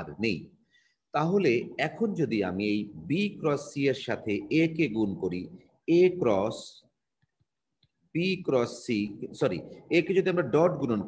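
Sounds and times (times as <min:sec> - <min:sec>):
man lecturing: 0:00.0 - 0:07.0, 0:07.8 - 0:11.0.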